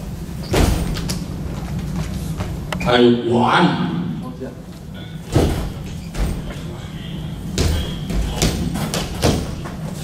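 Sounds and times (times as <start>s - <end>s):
feet stamping on floor: 7.6s - 9.8s.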